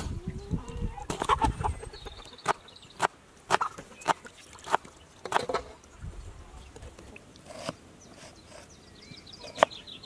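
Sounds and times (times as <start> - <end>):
chickens clucking: 0.0 - 5.8.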